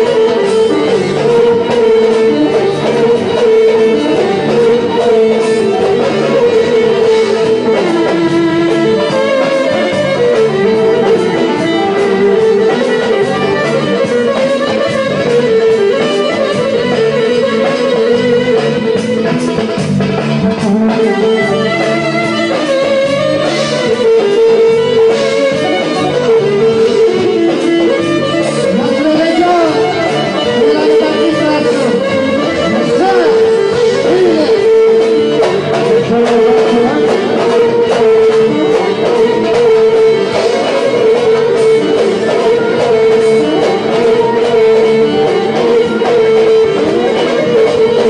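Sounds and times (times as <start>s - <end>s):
lead instrument sliding melody: 0.0s - 48.0s
steady drum beat: 0.0s - 48.0s.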